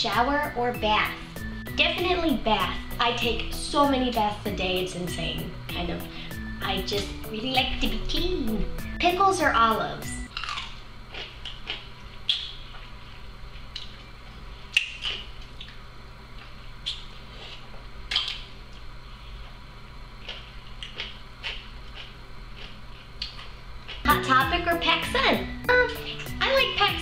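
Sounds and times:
steady low hum: 0.0s - 27.0s
person chewing crunchy food: 10.3s - 14.1s, 14.7s - 24.1s.

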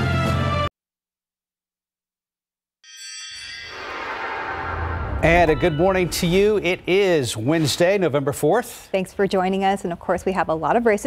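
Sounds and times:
news theme music: 3.7s - 8.4s.

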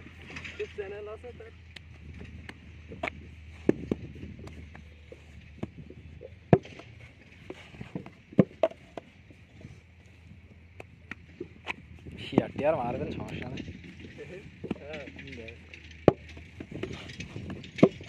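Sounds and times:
sharp thumps: 1.7s - 9.2s.

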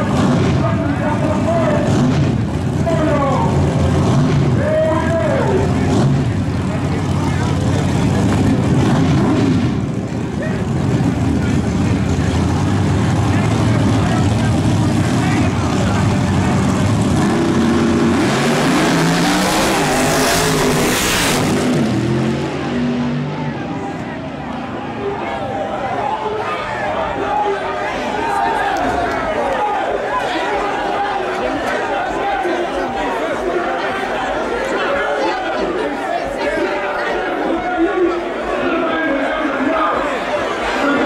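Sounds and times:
drag race car engines: 0.0s - 41.0s.

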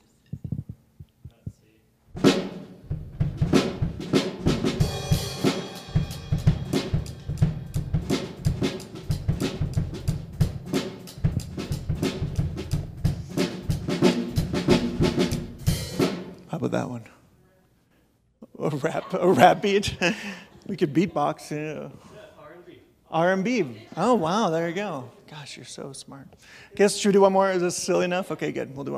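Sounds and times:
drum kit beat: 2.2s - 16.7s.

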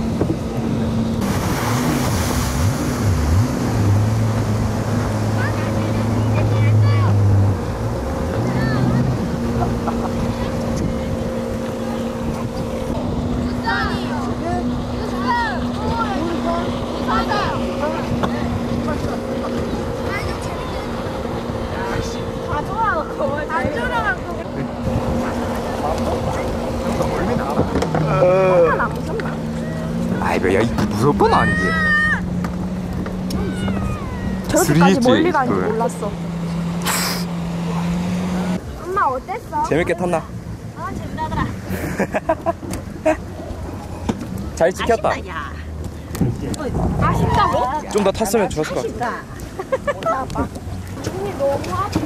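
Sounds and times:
wind and spray noise: 0.0s - 28.0s
water craft engine drone: 0.0s - 52.0s.

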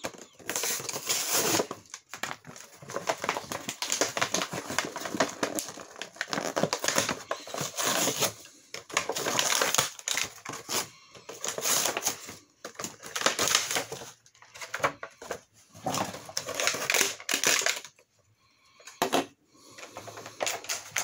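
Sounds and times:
plastic packaging crinkling: 0.0s - 18.0s, 19.8s - 21.0s.

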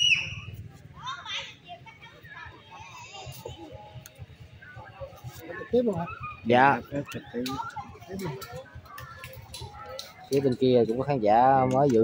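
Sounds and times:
background chatter of voices: 0.0s - 12.0s.

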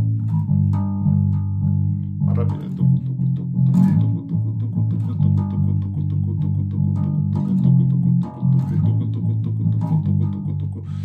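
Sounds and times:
electric bass guitar riff: 0.0s - 11.0s.

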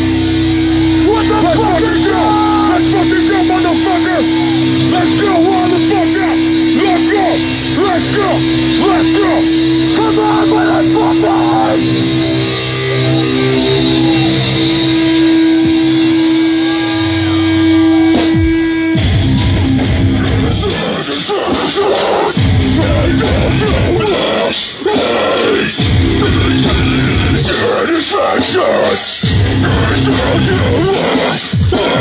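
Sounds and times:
death metal band playing loudly: 0.0s - 32.0s
guitar feedback drone: 0.0s - 32.0s
squealing guitar pitch bends: 0.0s - 32.0s.

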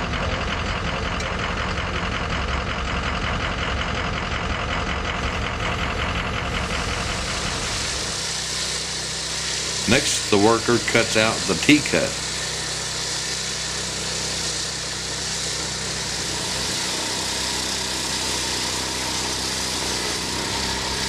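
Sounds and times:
engine idling: 0.0s - 21.0s.

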